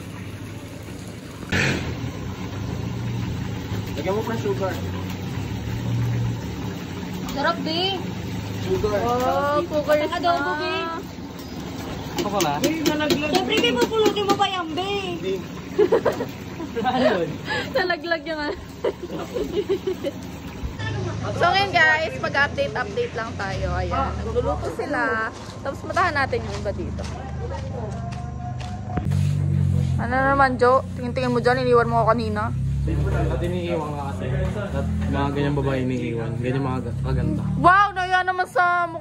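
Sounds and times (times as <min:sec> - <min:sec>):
low motor hum: 0:00.0 - 0:39.0.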